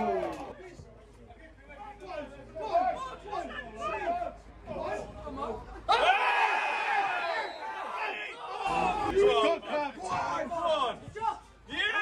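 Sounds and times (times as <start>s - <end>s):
crowd shouting together: 0.0s - 0.5s, 5.9s - 10.5s
scattered crowd voices: 0.0s - 12.0s.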